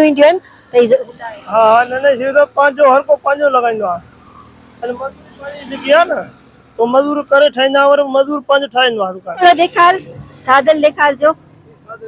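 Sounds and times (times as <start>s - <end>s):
roadside traffic: 0.0s - 12.0s
vehicle passing: 0.0s - 12.0s.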